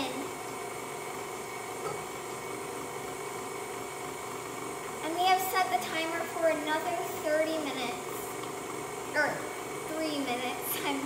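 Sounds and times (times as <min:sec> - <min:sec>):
stand mixer motor running: 0:00.3 - 0:05.0.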